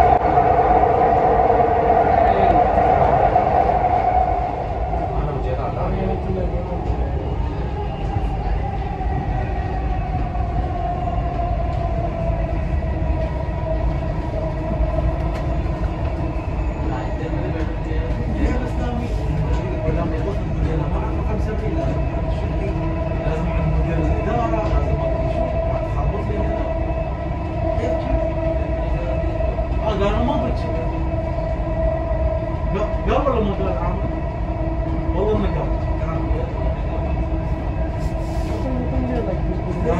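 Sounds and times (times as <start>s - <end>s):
steady whine: 0.0s - 17.6s
metro train rumble with whine: 0.0s - 39.9s.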